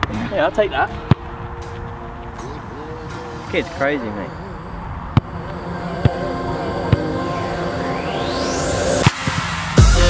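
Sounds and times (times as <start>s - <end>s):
background music with held tones: 0.2s - 10.0s.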